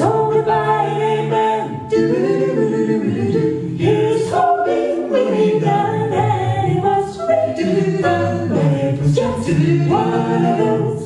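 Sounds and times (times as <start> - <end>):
a cappella group singing: 0.0 - 11.0.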